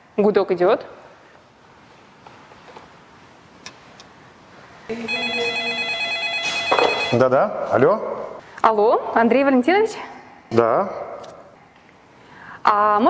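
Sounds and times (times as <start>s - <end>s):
electronic telephone ringer: 5.1s - 7.2s.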